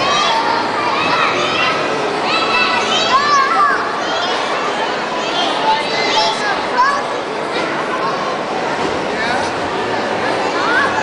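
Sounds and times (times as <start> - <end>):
children calling out: 0.0 - 7.2
hubbub of voices: 0.0 - 11.0.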